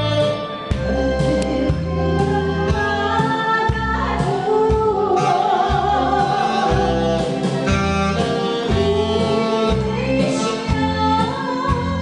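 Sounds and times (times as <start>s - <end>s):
woman singing: 0.0s - 7.6s, 8.3s - 12.0s
amplified instrumental accompaniment: 0.0s - 12.0s.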